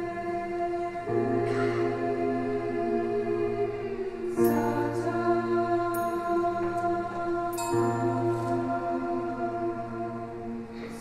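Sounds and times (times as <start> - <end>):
women's choir singing chords: 0.0 - 11.0.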